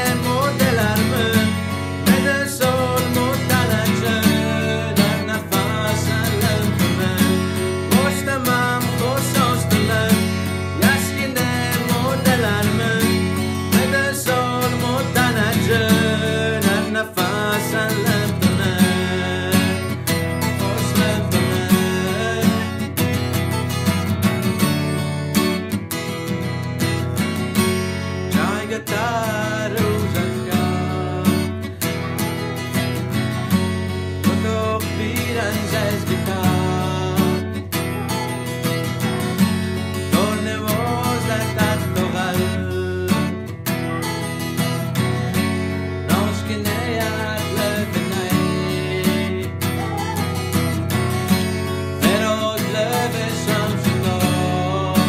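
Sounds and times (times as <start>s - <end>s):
man singing: 0.0s - 55.0s
strummed acoustic guitar: 0.0s - 55.0s.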